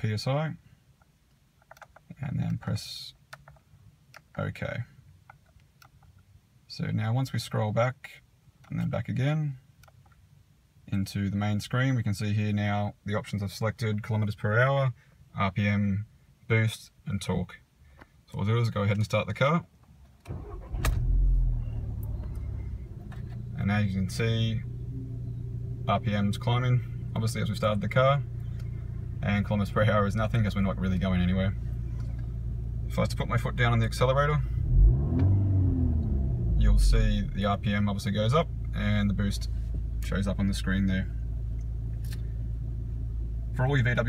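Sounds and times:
car engine idling: 20.3s - 44.0s.

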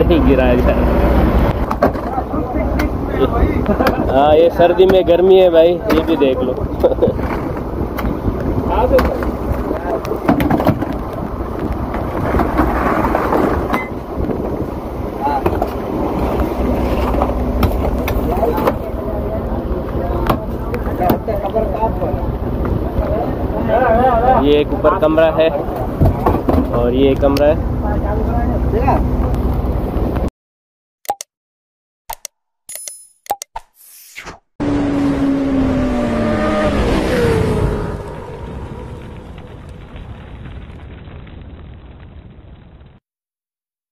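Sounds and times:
boat engine humming: 0.0s - 12.8s, 13.6s - 30.2s
sharp clicks and pops: 31.0s - 31.3s, 32.1s - 33.8s
roaring whoosh falling in pitch: 33.8s - 39.8s.

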